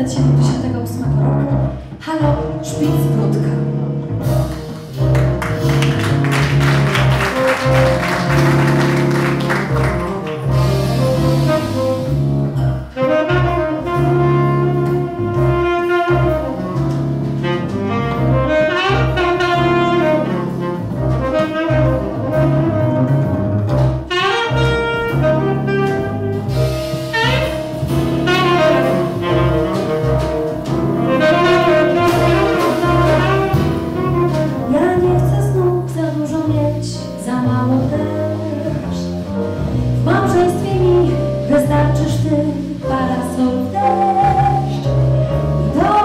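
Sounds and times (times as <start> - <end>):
double bass: 0.0 - 46.0
drum kit: 0.0 - 46.0
saxophone melody: 5.1 - 35.0, 40.1 - 46.0.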